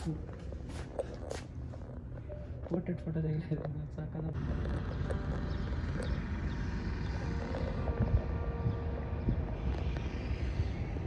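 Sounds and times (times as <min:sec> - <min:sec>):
moving vehicle rumble: 0:00.0 - 0:11.0.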